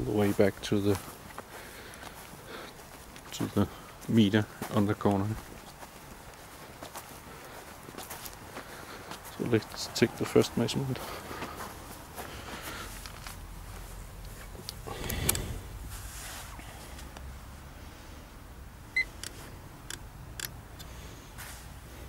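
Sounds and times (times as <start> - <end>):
handling rustle: 0.0 - 17.2.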